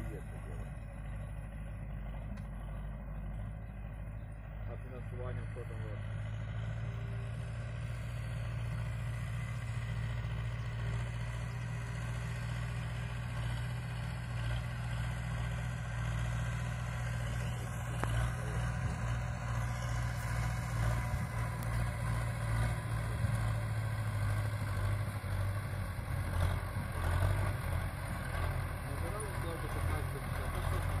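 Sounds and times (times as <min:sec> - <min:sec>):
tractor diesel engine running: 0:00.0 - 0:31.0.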